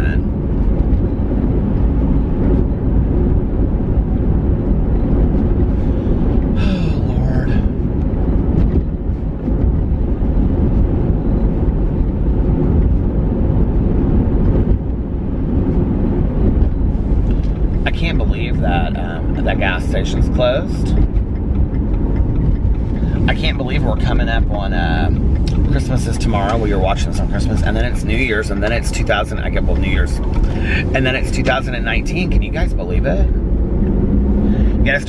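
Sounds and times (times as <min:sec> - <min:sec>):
car road rumble inside cabin: 0:00.0 - 0:35.0.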